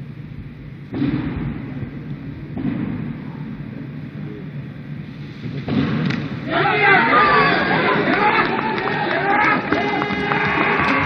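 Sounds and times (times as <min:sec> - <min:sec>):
arena crowd noise: 0:03.1 - 0:11.0
crowd cheering and shouting: 0:06.4 - 0:11.0.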